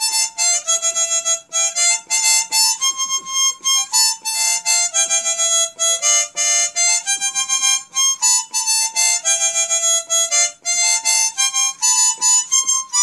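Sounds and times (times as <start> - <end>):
harmonica melody: 0.0 - 13.0.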